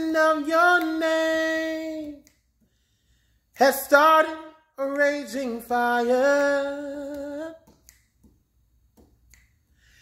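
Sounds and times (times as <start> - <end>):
soft intake of breath: 2.6 - 3.5, 9.7 - 10.0.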